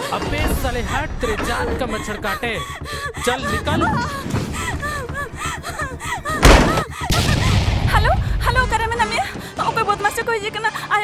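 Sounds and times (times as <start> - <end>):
low rumble: 0.3 - 9.1
heavy loud thud: 6.4 - 7.9.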